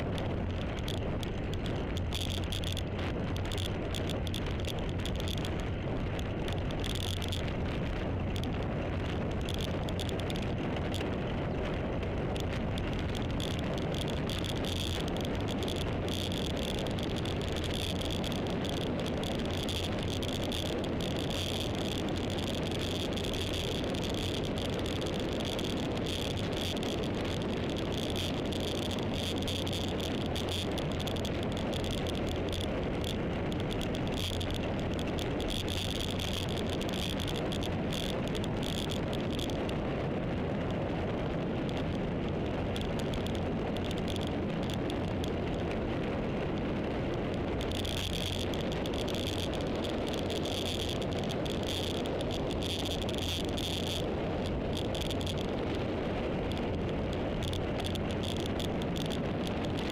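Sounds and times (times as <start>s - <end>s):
vehicle road noise: 0.0s - 59.9s
wind on microphone: 0.0s - 59.9s.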